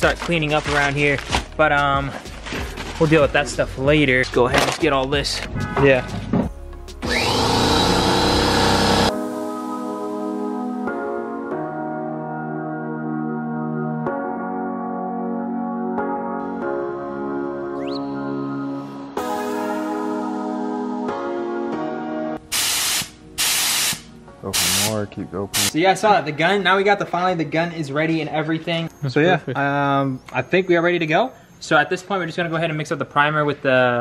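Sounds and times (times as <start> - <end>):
background music sustained tones: 0.0 - 32.6
air compressor motor whining: 7.0 - 9.1
spray gun blowing compressed air: 22.5 - 24.9.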